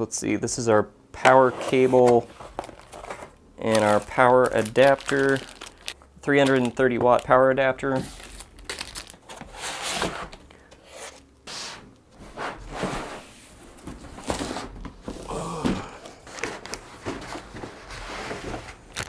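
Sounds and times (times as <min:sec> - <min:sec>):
cardboard scraping and rustling: 0:01.4 - 0:05.4, 0:07.9 - 0:15.3, 0:16.2 - 0:19.0
plastic sheeting crinkling: 0:02.4 - 0:09.3.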